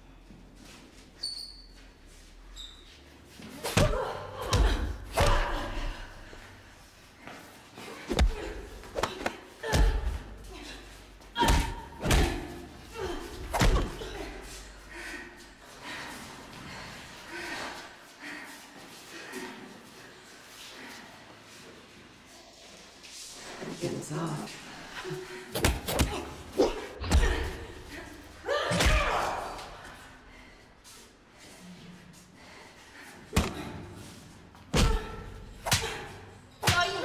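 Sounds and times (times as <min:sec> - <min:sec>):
people grunting and shouting: 0:03.4 - 0:21.9, 0:23.4 - 0:37.0
punches landing: 0:03.6 - 0:05.9, 0:08.1 - 0:10.3, 0:11.4 - 0:14.2, 0:25.5 - 0:27.9, 0:33.3 - 0:33.9.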